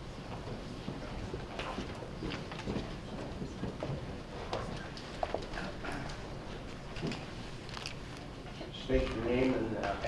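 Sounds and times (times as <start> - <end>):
footsteps: 0.0 - 10.0
low hum of meeting room: 0.0 - 10.0.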